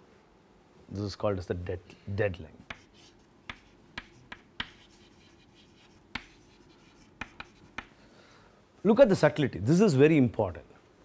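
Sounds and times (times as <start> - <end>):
chalk writing on blackboard: 2.6 - 8.0.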